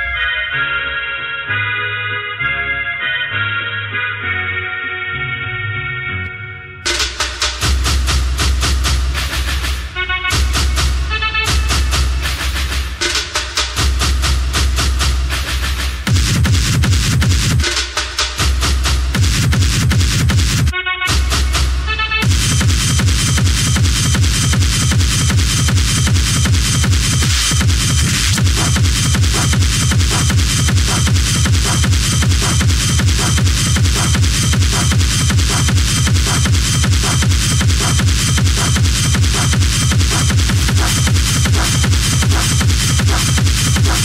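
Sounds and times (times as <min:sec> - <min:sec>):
electronic dance music: 0:06.8 - 0:44.0.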